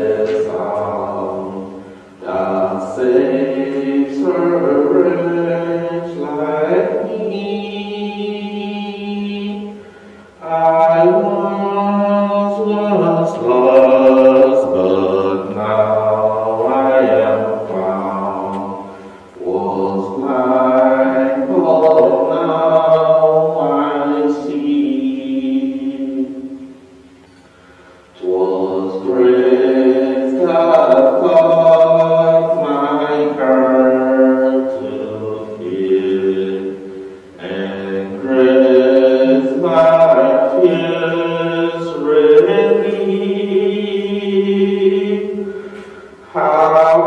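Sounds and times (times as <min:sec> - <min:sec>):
voices singing a hymn: 0:00.0 - 0:47.0.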